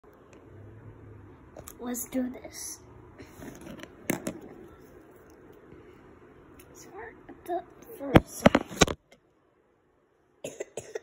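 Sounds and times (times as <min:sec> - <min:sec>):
marker and paper rustling: 0:03.2 - 0:05.4, 0:07.9 - 0:09.0.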